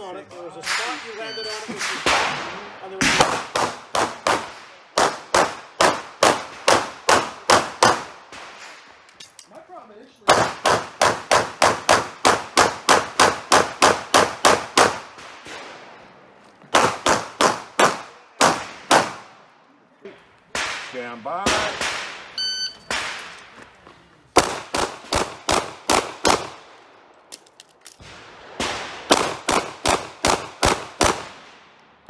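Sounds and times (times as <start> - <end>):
pistol shots: 1.8 - 8.6, 10.3 - 15.7, 16.7 - 19.3, 20.5 - 23.4, 24.4 - 26.8, 28.0 - 31.5.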